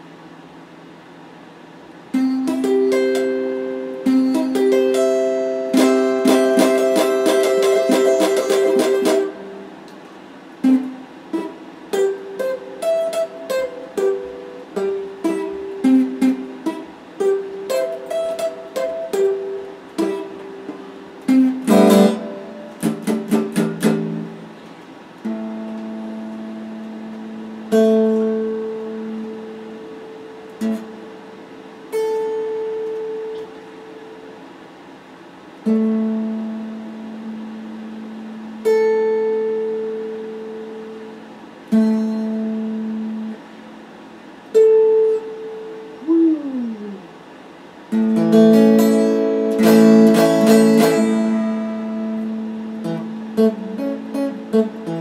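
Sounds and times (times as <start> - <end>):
electric guitar playing solo: 2.1 - 34.3, 47.9 - 55.0.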